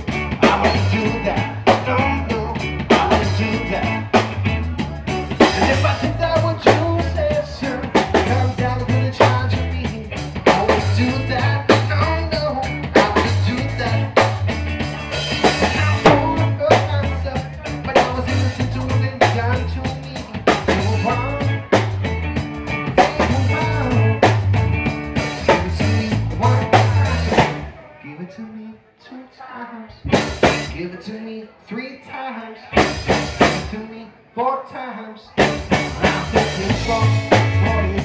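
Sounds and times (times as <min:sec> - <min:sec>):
rock band playing: 0:00.0 - 0:27.8, 0:30.0 - 0:30.8, 0:32.7 - 0:33.9, 0:35.4 - 0:38.0.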